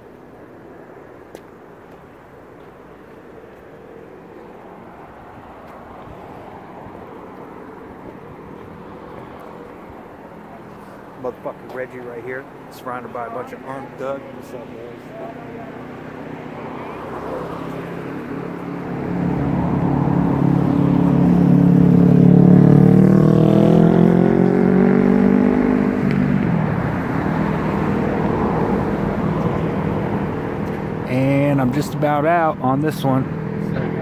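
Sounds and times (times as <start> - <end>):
vehicle engine passing by: 4.7 - 32.1.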